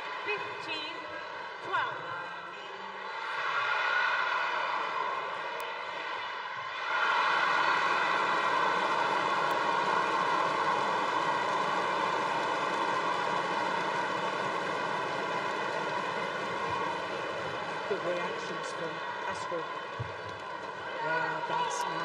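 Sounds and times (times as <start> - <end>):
crowd cheering: 3.0 - 22.0.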